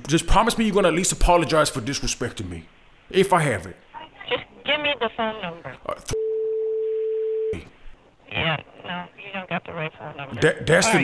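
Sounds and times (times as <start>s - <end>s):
censor bleep tone: 6.2s - 7.6s.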